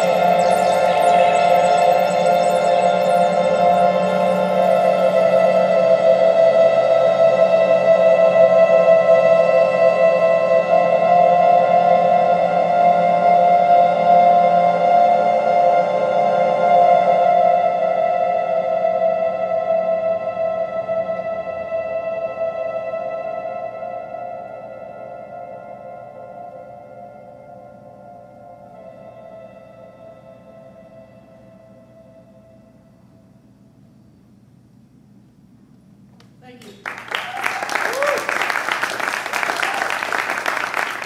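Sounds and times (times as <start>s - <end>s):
ambient electronic drone music: 0.0s - 33.4s.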